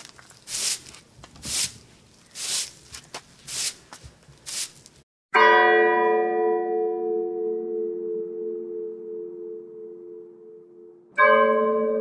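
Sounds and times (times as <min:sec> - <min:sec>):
bell struck and ringing: 0:05.4 - 0:12.0.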